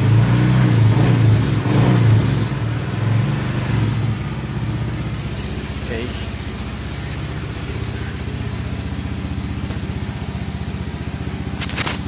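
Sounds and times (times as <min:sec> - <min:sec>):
scooter engine idling: 0:00.0 - 0:12.0.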